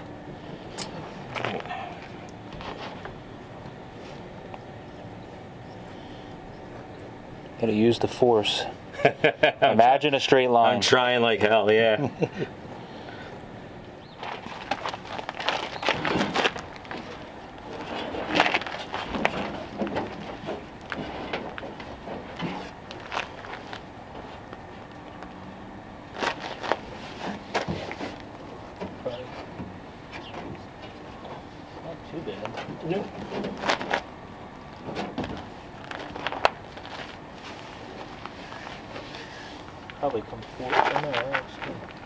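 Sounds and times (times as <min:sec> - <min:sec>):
rubber mat rustling and scraping: 0:14.2 - 0:24.5, 0:26.1 - 0:28.2, 0:32.9 - 0:34.1.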